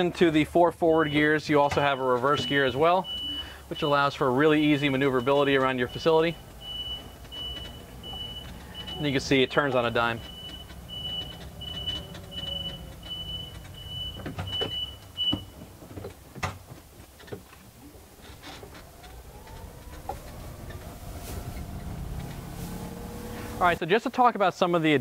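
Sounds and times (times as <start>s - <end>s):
tyre and road rumble: 0.0s - 23.8s
reverse warning beeper: 0.8s - 15.6s, 18.2s - 23.8s
electric motor whine: 18.6s - 23.8s.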